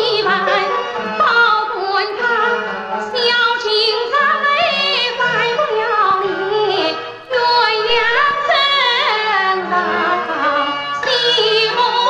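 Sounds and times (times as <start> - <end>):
instrumental accompaniment: 0.0 - 12.0
woman singing opera: 0.0 - 12.0.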